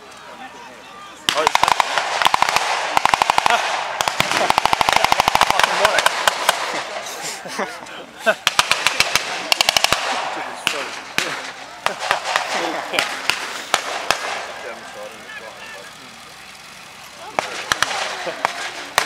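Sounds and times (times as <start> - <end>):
automatic gunfire bursts: 1.3 - 7.0, 8.4 - 14.6, 17.2 - 19.0.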